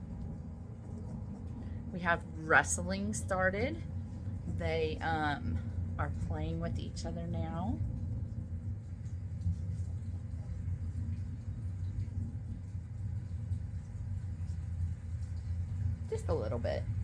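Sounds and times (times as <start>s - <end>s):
low machine hum: 0.0s - 17.0s.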